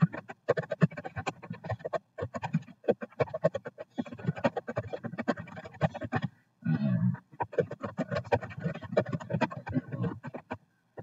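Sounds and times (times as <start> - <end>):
rapid typing on keyboard: 0.0 - 6.3, 7.4 - 10.6.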